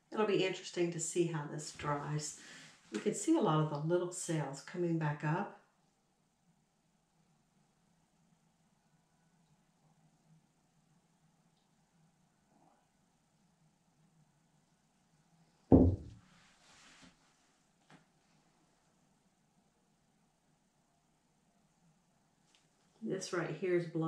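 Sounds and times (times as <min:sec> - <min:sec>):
canvas thumping on table: 0:15.7 - 0:16.2
soft rustling noise: 0:16.0 - 0:18.9, 0:22.4 - 0:23.2.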